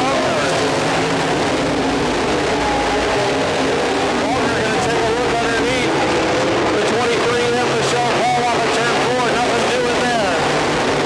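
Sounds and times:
race car engines revving: 0.0 - 11.0.

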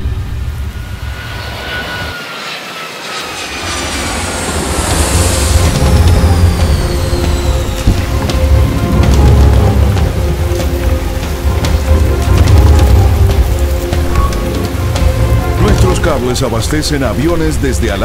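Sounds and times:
jet engines winding down: 0.0 - 18.0
music with deep pulsing bass: 4.5 - 17.7.

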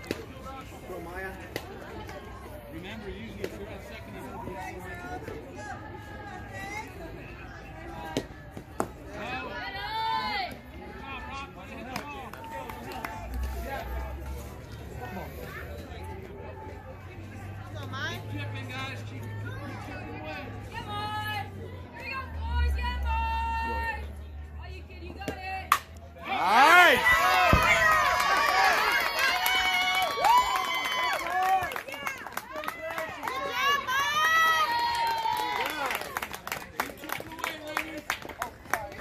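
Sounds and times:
spectators and players shouting: 4.2 - 13.0, 26.2 - 36.0.

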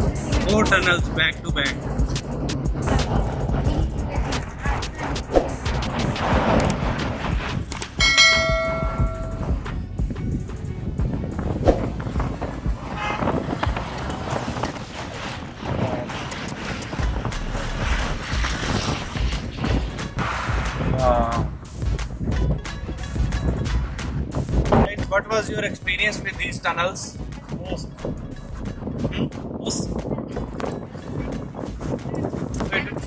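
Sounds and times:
car engine and road noise: 0.0 - 25.0
car horn: 12.9 - 13.4.

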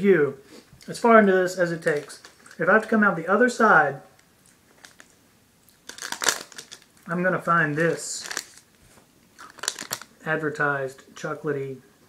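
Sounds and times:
foil wrapper crackling: 4.6 - 5.2, 5.8 - 7.0, 7.6 - 8.8, 9.4 - 10.1.

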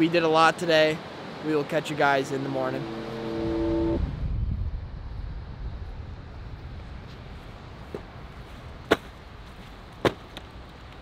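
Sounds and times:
wind rumble on microphone: 2.6 - 10.0.

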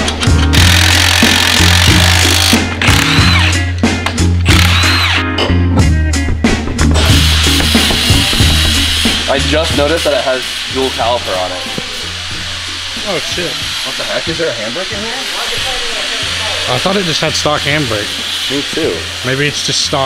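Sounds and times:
background music with bass beat: 0.0 - 19.1
handheld power tool running: 0.2 - 3.7, 4.5 - 5.3.

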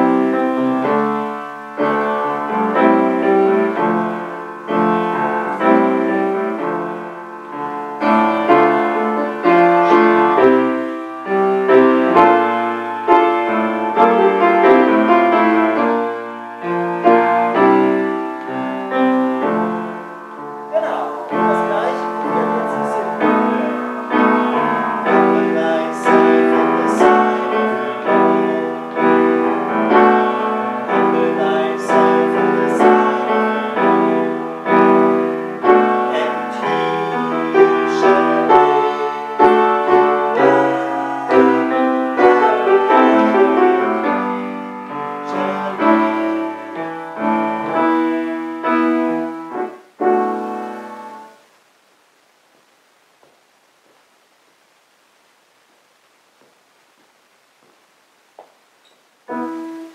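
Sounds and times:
grand piano chords: 0.0 - 51.6, 56.4 - 59.9.

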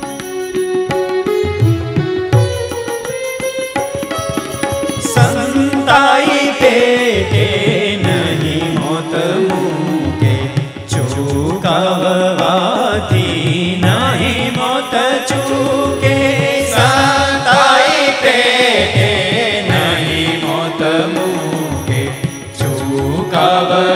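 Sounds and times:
bowed violin: 0.0 - 23.9
tabla: 0.0 - 23.9
men singing devotional song: 5.0 - 23.9.

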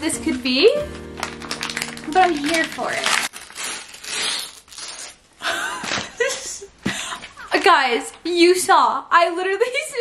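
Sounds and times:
wrapping paper tearing and crinkling: 0.2 - 6.2.

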